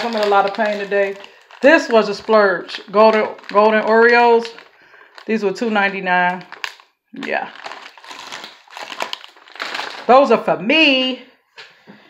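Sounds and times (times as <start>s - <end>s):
plastic packaging crinkling: 0.0s - 10.4s.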